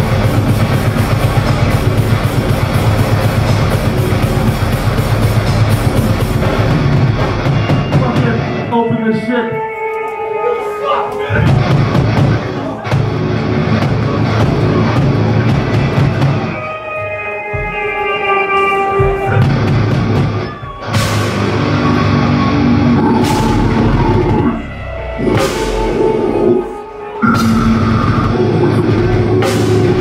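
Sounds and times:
heavy metal band playing: 0.0s - 30.0s.

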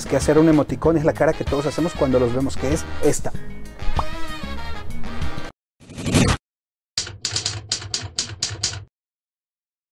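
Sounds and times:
typewriter key clacks: 7.0s - 8.9s.

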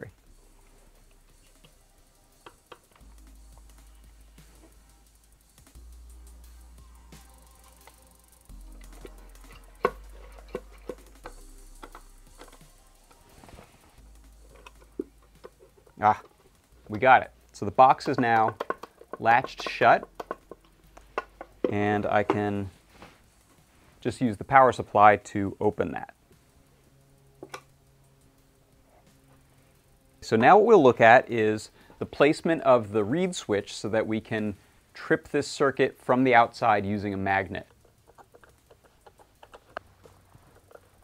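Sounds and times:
wooden box lid knocks and clicks: 18.0s - 20.6s.

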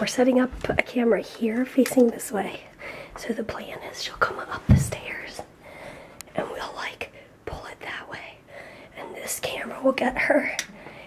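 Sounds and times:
person whispering: 3.2s - 5.5s, 6.3s - 10.6s.

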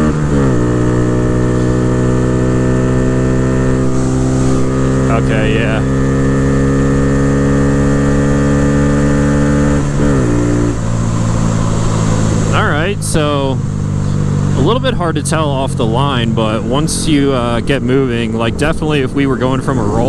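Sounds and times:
motorcycle engine revving high: 0.0s - 20.0s.

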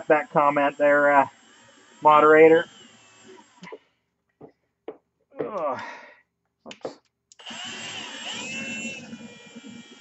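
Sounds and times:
cordless drill whirring: 0.0s - 4.0s, 7.3s - 10.0s.

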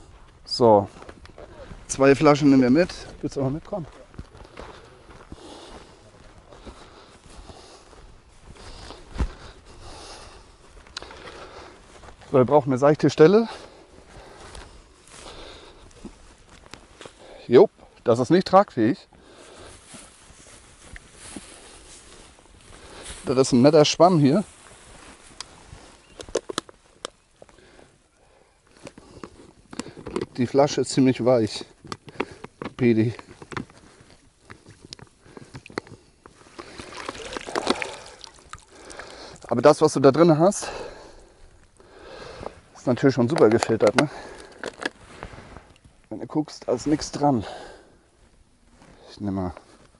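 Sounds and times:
footsteps through grass: 0.0s - 17.4s, 19.2s - 27.8s
water sloshing and splashing: 36.5s - 39.5s
water running off cloth: 36.6s - 39.4s.

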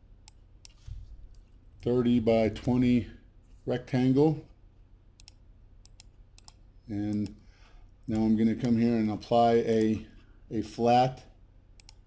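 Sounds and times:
man talking: 1.8s - 4.5s, 6.9s - 7.4s, 8.1s - 11.3s.

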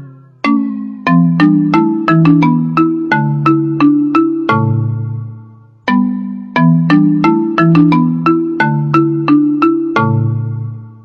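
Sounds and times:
marimba ringtone melody: 0.0s - 11.0s.

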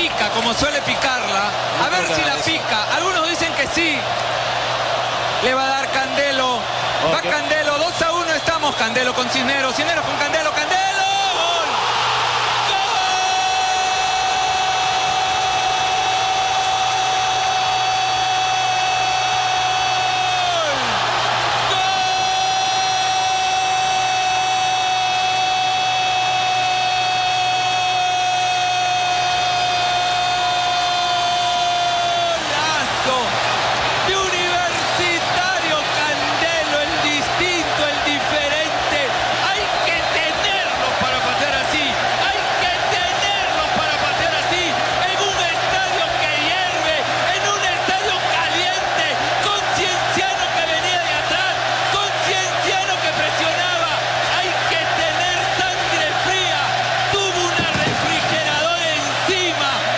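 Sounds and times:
excited rapid commentary: 0.0s - 4.2s, 5.3s - 59.9s
crowd noise: 0.0s - 59.9s.

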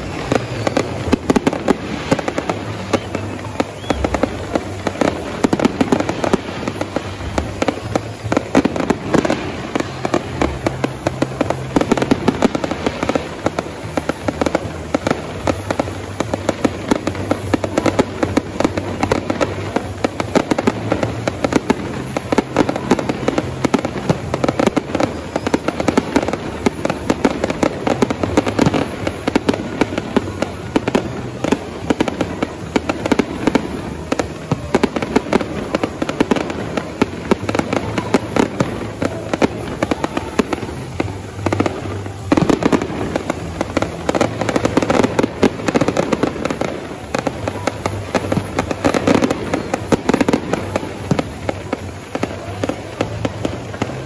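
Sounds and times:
fireworks bangs and crackling: 0.0s - 54.0s.

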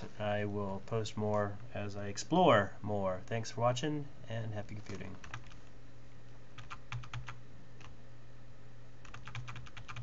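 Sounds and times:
steady low hum: 0.0s - 10.0s
computer keyboard keys clicking: 4.8s - 5.6s, 6.6s - 7.9s, 9.0s - 10.0s.

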